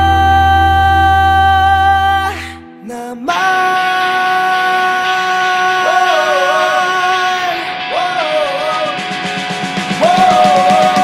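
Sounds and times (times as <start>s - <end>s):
rock band playing: 5.1s - 11.0s.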